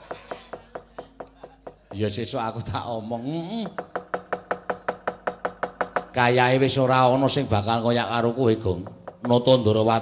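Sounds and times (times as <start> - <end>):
wooden mallet knocking on chest: 0.0 - 2.2, 3.6 - 6.3, 8.8 - 9.7.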